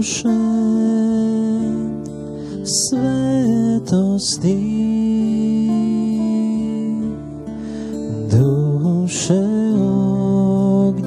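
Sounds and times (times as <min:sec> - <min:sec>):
person singing a hymn: 0:00.0 - 0:07.2, 0:08.1 - 0:11.0
acoustic guitar: 0:00.0 - 0:11.0.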